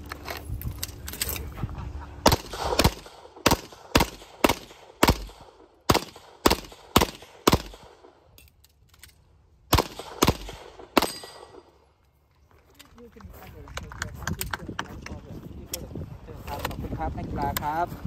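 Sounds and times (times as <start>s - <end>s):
pistol shots: 2.2s - 8.2s, 9.7s - 11.7s.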